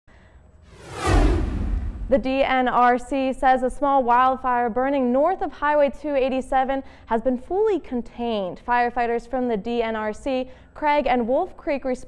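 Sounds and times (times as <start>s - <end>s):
deep low boom: 0.7s - 2.6s
swept whoosh: 0.7s - 2.6s.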